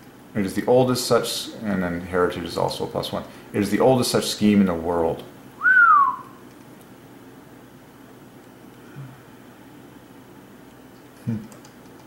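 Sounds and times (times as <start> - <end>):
faint room hiss: 0.0 - 12.0
person whistling sliding note: 5.6 - 6.4.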